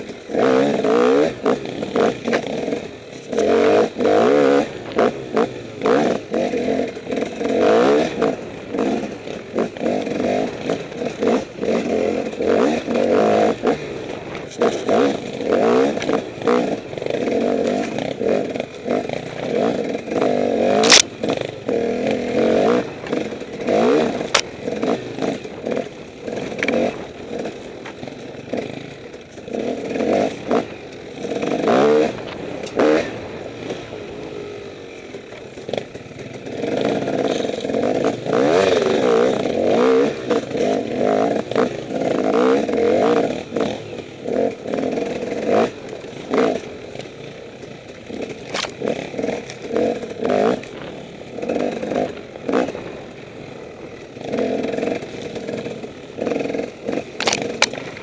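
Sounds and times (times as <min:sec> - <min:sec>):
dirt bike engine revving: 0:00.0 - 0:58.0.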